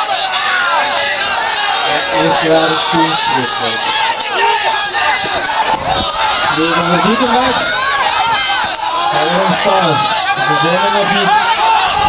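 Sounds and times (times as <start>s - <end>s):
crowd shouting encouragement: 0.0s - 12.0s.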